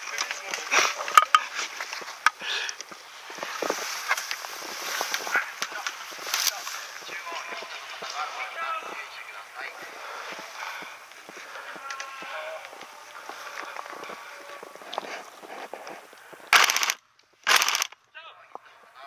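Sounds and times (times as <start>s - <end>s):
indistinct voices: 0.0s - 17.0s
irregular rustling: 0.0s - 18.0s
sharp clicks and knocks: 16.5s - 18.0s.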